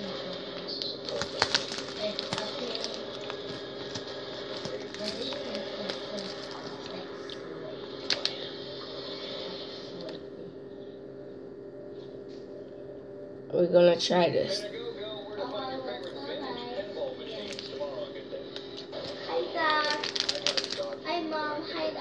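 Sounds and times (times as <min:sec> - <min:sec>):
steady hum: 0:00.0 - 0:22.0
candy wrapper crinkling: 0:00.6 - 0:08.4, 0:17.2 - 0:18.0, 0:18.6 - 0:21.0.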